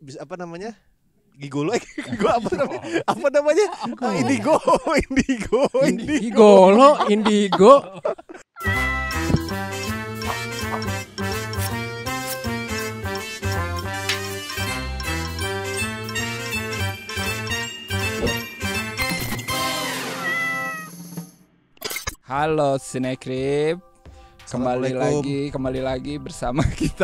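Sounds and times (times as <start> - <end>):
laughter: 1.7 - 8.6, 26.6 - 27.0
cat meow sound effect: 8.6 - 9.5, 19.5 - 21.1
upbeat intro jingle: 9.1 - 20.3.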